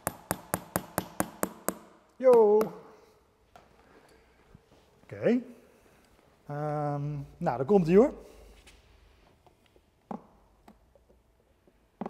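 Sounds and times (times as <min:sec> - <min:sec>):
hammer tapping a nail: 0:00.0 - 0:02.8.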